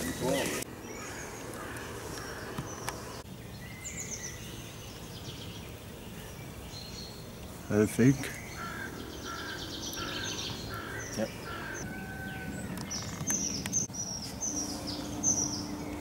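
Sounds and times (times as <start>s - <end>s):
songbirds calling: 0.0s - 16.0s.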